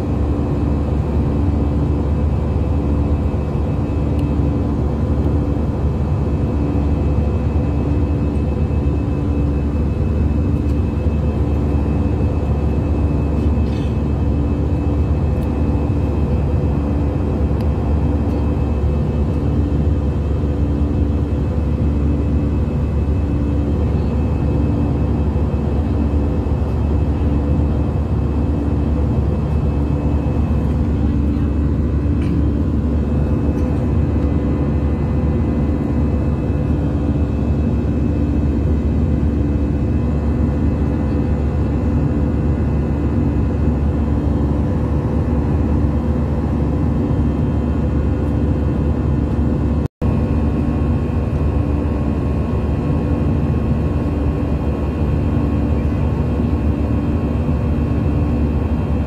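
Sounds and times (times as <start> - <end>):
airliner cabin engine drone: 0.0 - 59.0.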